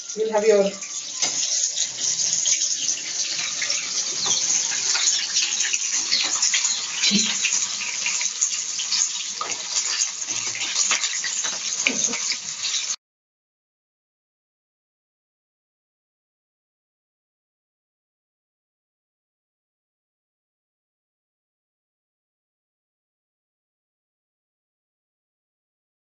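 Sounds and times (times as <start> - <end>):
deep-frying sizzle with pops: 0.0 - 13.0.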